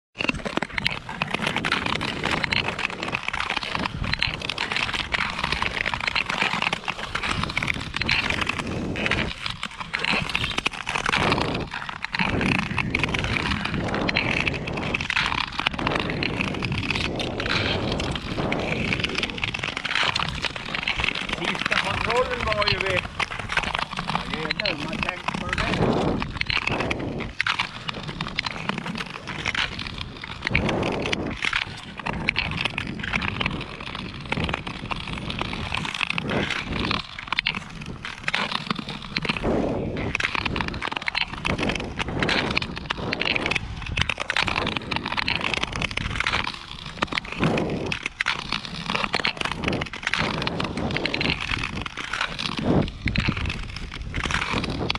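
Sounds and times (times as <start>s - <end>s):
ice skate blades scraping ice: 0.2s - 54.9s.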